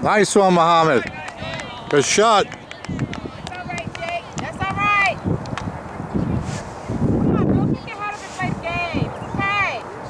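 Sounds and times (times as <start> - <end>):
people shouting: 1.0 - 3.4.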